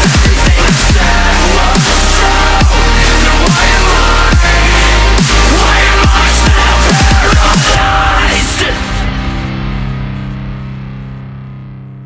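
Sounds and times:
distorted guitar chord ringing: 7.8 - 12.0.

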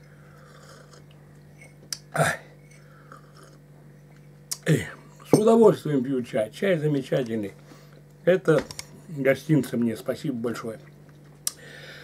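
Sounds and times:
steady low hum: 0.0 - 12.0
man slurping tea: 0.4 - 1.1.

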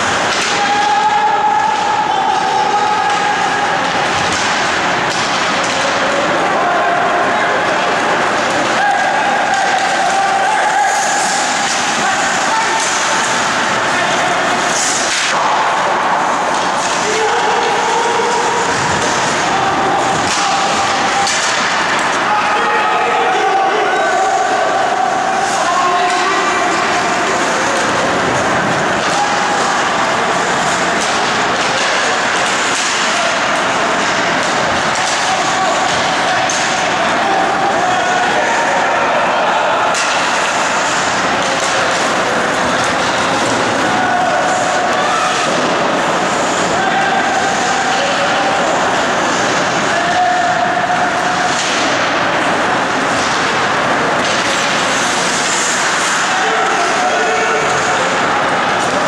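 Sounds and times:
skates and sticks on ice: 2.5 - 22.9, 25.4 - 59.0.

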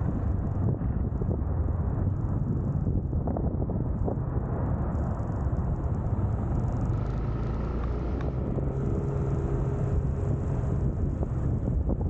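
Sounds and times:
tyre and road noise: 0.0 - 12.0
scooter engine droning: 6.6 - 11.8.

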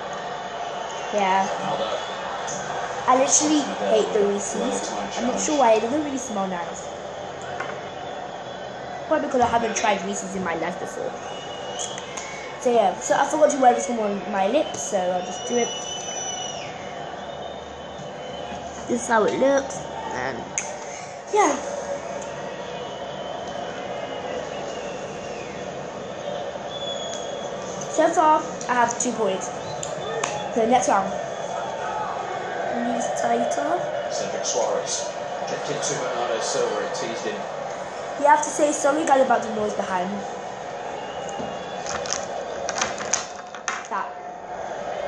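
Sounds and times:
crowd noise on tv: 0.0 - 45.0.

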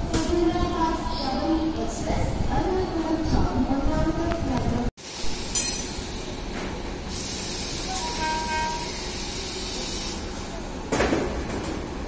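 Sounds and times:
train hiss and hum: 5.0 - 10.9.

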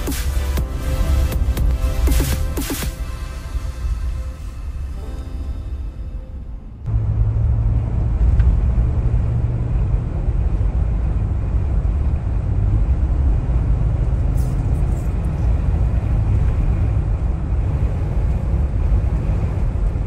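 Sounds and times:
car engine and tyre noise: 0.0 - 20.0.

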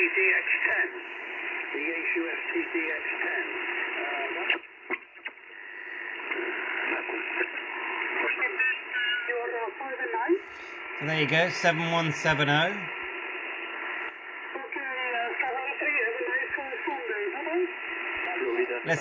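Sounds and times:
radio band noise: 0.0 - 19.0
radio tuning clicks: 0.5 - 8.4, 10.4 - 19.0
man talking over radio: 1.6 - 4.5, 8.2 - 9.8, 10.6 - 13.0, 18.1 - 19.0.

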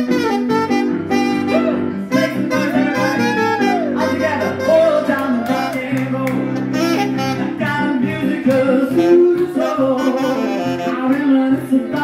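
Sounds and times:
alto saxophone lead: 0.0 - 8.0, 8.7 - 11.6
piano accompaniment: 0.0 - 12.0.

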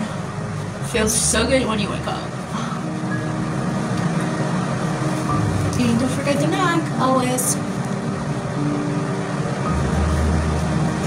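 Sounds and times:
low mechanical hum and rumble: 0.0 - 11.0.

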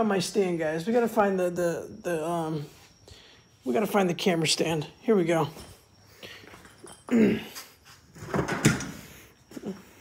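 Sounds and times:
person grunting: 7.1 - 7.6.

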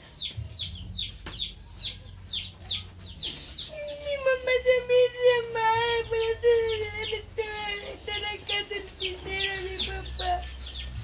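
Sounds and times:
chicks peeping: 0.0 - 11.0.

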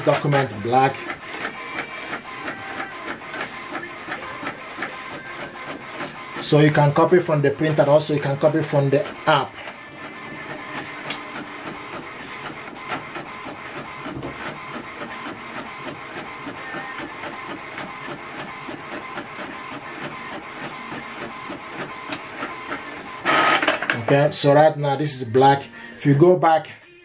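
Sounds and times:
printer rapid ticking: 0.0 - 24.5
printer mechanical whir: 0.0 - 24.7.

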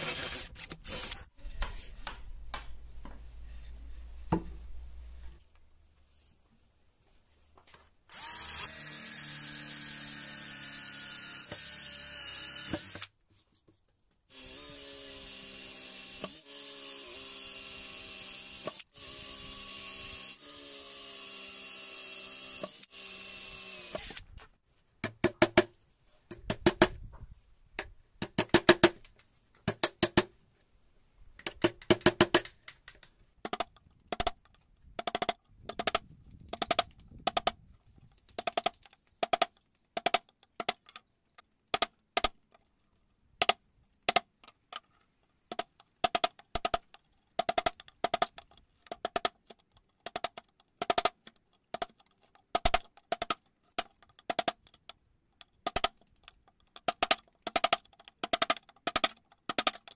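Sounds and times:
cordless drill boring into wood: 0.0 - 1.2, 8.1 - 13.1, 14.3 - 24.3.

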